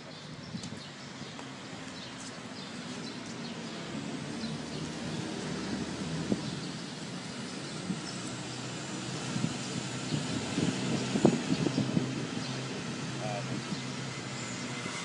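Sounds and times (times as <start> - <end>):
vehicle engine humming: 0.0 - 15.0.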